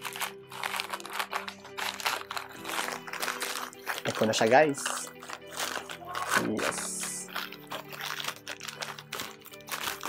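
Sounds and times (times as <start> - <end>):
background music: 0.0 - 10.0
plastic crinkling: 0.0 - 10.0
scissors cutting plastic: 0.0 - 10.0.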